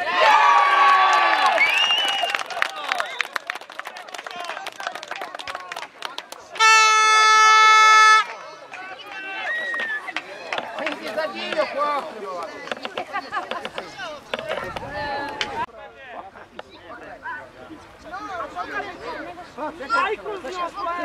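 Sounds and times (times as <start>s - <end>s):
crowd shouting and cheering: 0.0s - 15.7s
horn blast: 6.6s - 8.4s.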